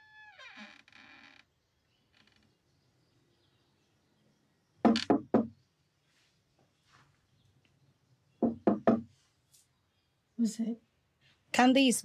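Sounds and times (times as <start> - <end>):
knocks on wooden door: 4.9 - 5.6, 8.4 - 9.1.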